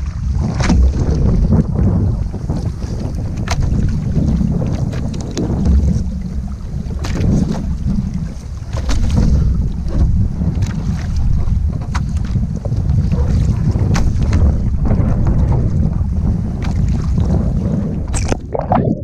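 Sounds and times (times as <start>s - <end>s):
water splashing against camera: 0.0s - 19.0s
wind and water buffeting microphone: 0.0s - 19.0s.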